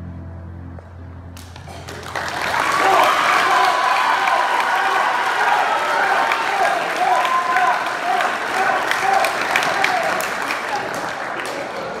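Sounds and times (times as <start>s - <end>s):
audience applauding: 1.4s - 12.0s.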